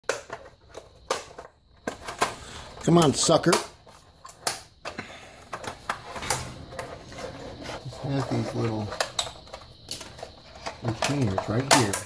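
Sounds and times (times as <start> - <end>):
plastic cartridge clicking and knocking: 0.0 - 2.4.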